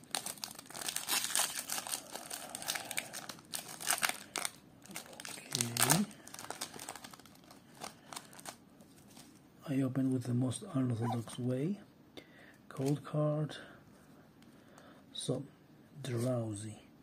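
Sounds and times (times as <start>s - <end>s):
foil wrapper crinkling and tearing: 0.0s - 9.2s.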